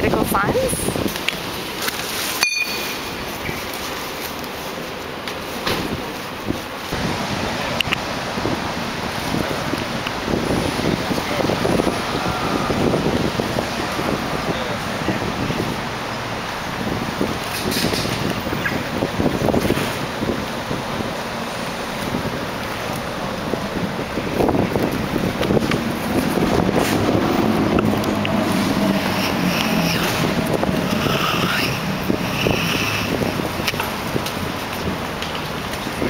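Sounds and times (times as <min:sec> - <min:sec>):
wind on microphone: 0:00.0 - 0:01.2, 0:05.8 - 0:36.0
traffic rumble: 0:00.0 - 0:36.0.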